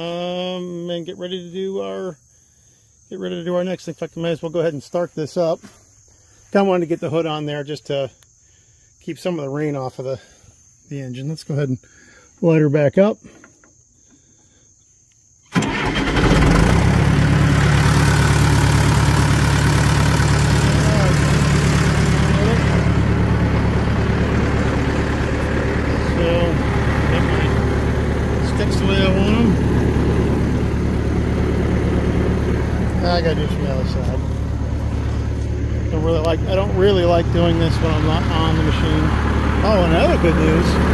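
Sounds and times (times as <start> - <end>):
crawler engine starting and idling: 15.5 - 40.9.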